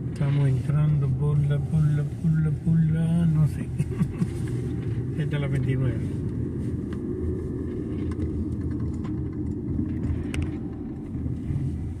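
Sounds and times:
car driving rumble inside cabin: 0.0 - 12.0.

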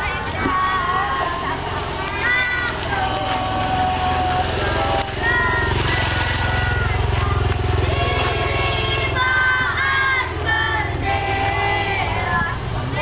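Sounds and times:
children singing: 0.0 - 13.0
motorcycle engine running: 0.0 - 13.0.

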